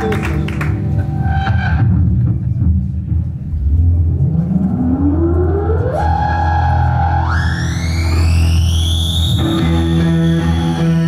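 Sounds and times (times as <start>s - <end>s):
low bass drone: 0.0s - 9.4s.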